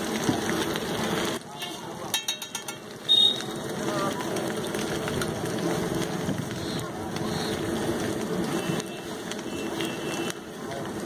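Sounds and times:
people's voices: 1.4s - 11.0s.

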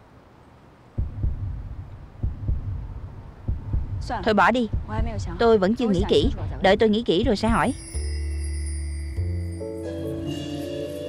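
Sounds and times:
heartbeat thuds: 1.0s - 8.0s
low hum: 1.0s - 9.5s.

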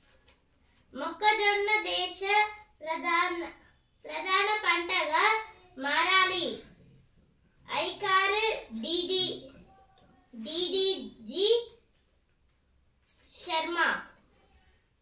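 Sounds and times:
boy reading aloud: 0.0s - 15.0s.

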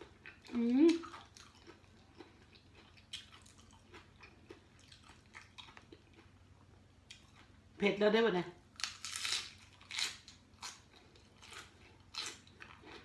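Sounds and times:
person chewing: 0.0s - 7.6s, 8.8s - 13.0s.

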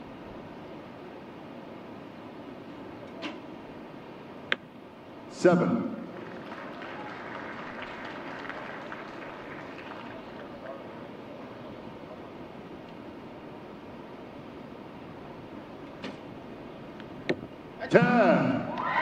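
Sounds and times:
faint murmuring voices: 6.3s - 12.5s.

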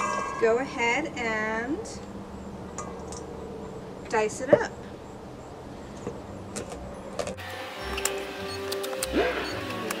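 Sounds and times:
soft background music: 7.3s - 10.0s.

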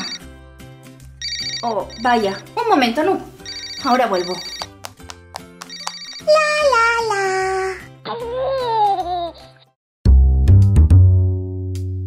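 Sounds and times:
light background music: 0.0s - 9.8s.

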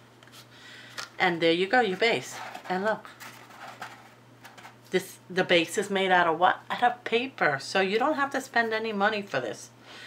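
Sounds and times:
paper rustling and crinkling: 1.9s - 4.8s.

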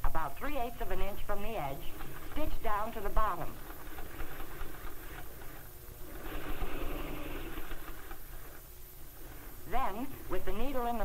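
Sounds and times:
electric sewing machine running: 1.8s - 8.6s.

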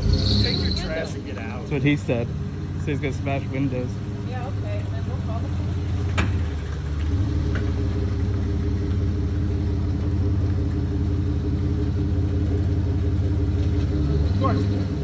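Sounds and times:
vehicle engine idling: 0.0s - 15.0s.

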